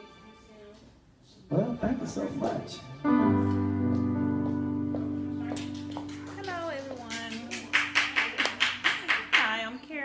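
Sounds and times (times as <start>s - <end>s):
held keyboard chord: 1.5s - 9.1s
people clapping: 5.4s - 9.8s.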